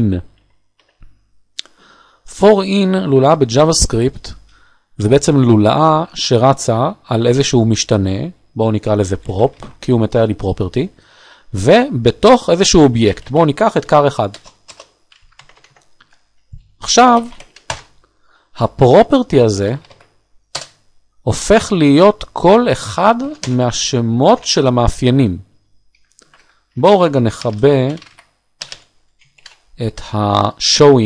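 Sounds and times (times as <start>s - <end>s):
keyboard keystrokes: 14.3s - 17.9s, 23.3s - 23.6s, 27.4s - 29.6s.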